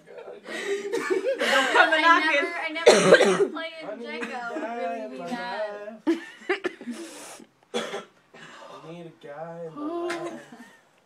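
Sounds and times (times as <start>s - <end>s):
person coughing: 2.8s - 3.5s, 7.7s - 8.1s, 10.0s - 10.6s.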